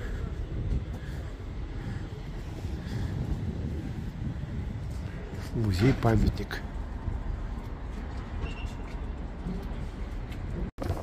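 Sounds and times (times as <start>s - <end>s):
city traffic rumble: 0.0s - 11.0s.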